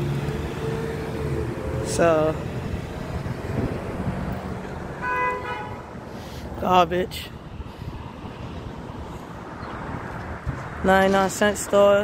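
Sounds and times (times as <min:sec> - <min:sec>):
car passing with engine hum: 0:00.0 - 0:06.6.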